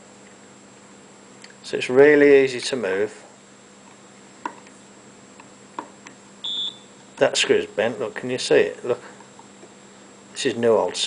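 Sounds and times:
short high beep: 6.4 - 6.9.

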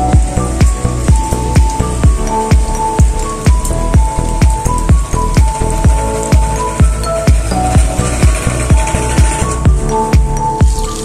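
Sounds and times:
background music with steady beat: 0.0 - 11.0
oil frying in a pan: 9.3 - 11.0.

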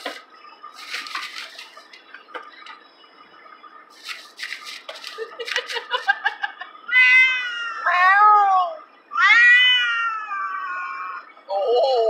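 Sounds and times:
cat meowing: 6.9 - 11.3.

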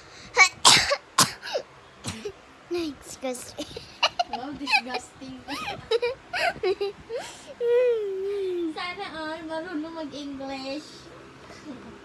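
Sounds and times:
girl coughing: 0.4 - 2.4.

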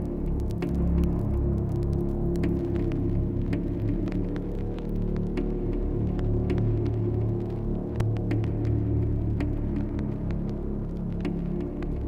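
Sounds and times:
dark ambient drone: 0.0 - 12.0.

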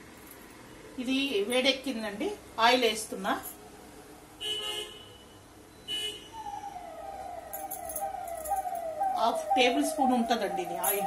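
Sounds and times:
siren sweeping: 6.2 - 11.0.

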